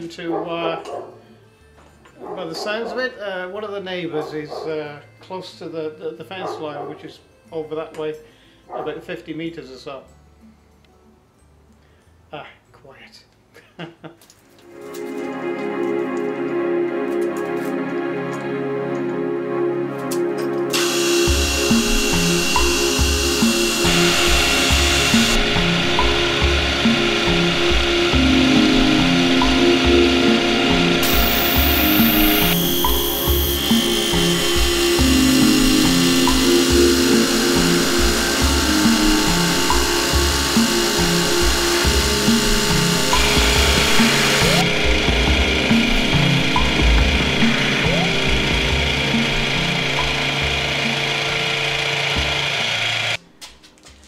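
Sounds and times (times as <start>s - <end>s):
background music: 0.0s - 13.6s, 14.4s - 54.0s
milling machine cutting metal: 20.7s - 53.2s.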